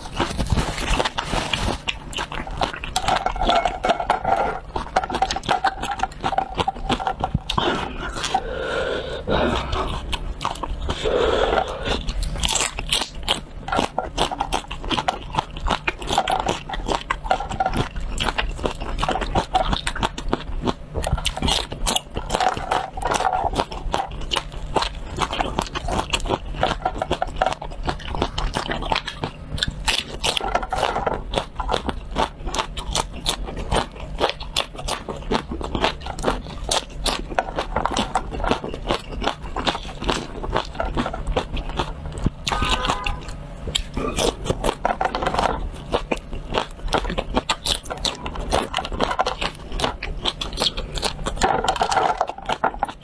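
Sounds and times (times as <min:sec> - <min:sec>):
crunching and chewing peppers: 0:00.0 - 0:53.0.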